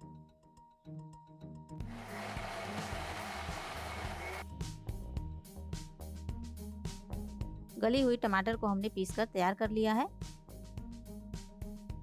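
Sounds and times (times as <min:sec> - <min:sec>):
background music with steady beat: 0:00.0 - 0:12.0
mixer grinder running: 0:01.8 - 0:04.4.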